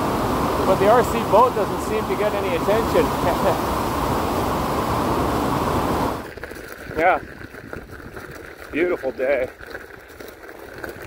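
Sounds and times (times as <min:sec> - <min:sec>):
waterfall rushing: 0:00.0 - 0:06.3.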